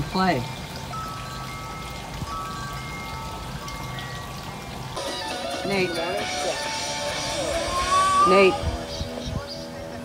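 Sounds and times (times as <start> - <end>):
wind chime ringing: 0.0 - 6.3
water trickling: 0.0 - 10.0.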